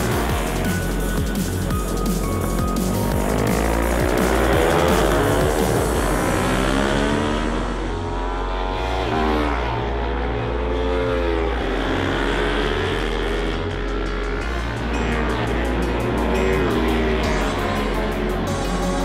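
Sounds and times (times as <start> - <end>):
background music with steady beat: 0.0 - 19.0
racing motorcycle engines revving: 0.0 - 19.0.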